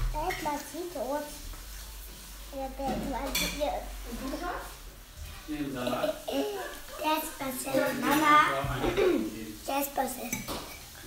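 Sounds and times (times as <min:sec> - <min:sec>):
forks clinking on plates: 0:10.2 - 0:11.0.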